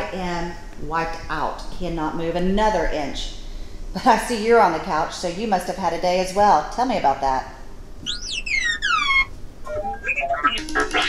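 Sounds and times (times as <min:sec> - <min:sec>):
electronic robot chirps: 0:08.0 - 0:11.0.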